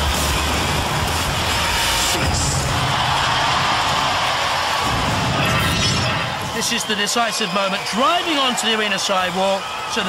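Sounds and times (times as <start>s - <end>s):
audience cheering and applauding: 0.0s - 10.0s.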